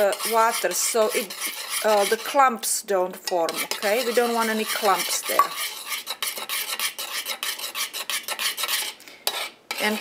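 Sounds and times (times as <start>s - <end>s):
utensil scraping saucepan: 0.0s - 10.0s.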